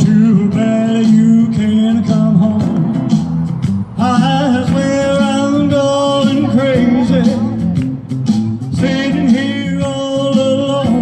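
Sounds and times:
man singing into microphone: 0.0 - 3.1, 4.0 - 7.7, 8.7 - 11.0
backing music: 0.0 - 11.0.

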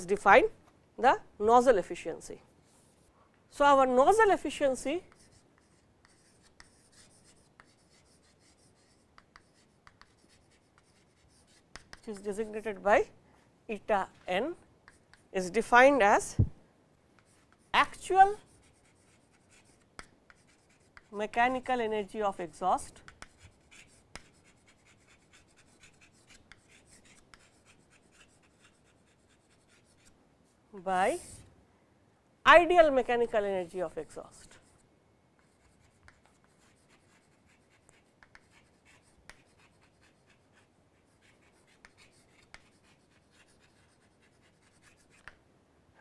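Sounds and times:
chalk scratching on chalkboard: 2.6 - 3.1, 4.5 - 12.8, 14.4 - 15.3, 17.2 - 30.2, 31.0 - 31.5, 33.6 - 34.8, 35.4 - 45.4.

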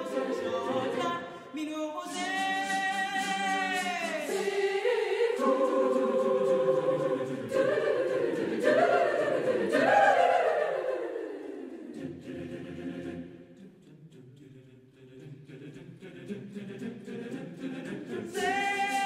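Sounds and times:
choir singing a cappella: 0.0 - 1.5, 2.1 - 19.0.

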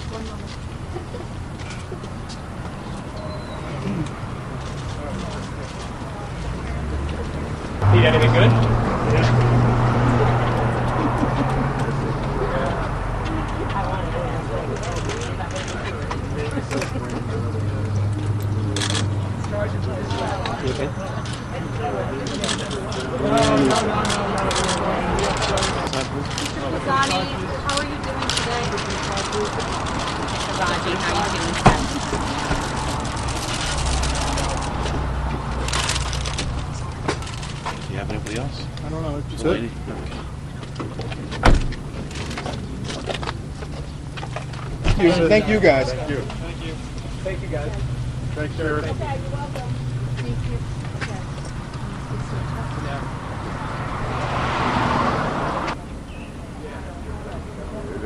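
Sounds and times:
car driving off: 6.5 - 56.2
jostling and handling noise: 24.0 - 38.5.

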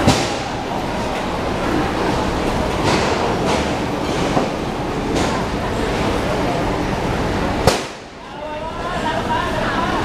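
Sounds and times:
street din: 0.0 - 8.4
voices: 0.0 - 10.0.

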